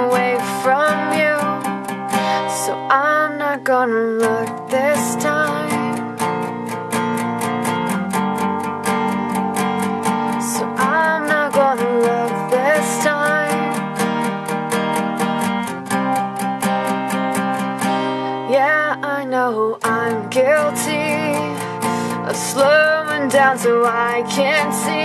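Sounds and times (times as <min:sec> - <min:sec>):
acoustic guitar strumming: 0:00.0 - 0:25.0.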